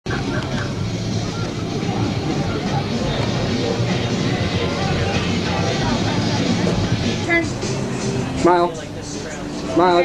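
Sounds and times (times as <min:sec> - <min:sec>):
busy outdoor background noise: 0:00.0 - 0:10.0
people talking: 0:00.1 - 0:10.0.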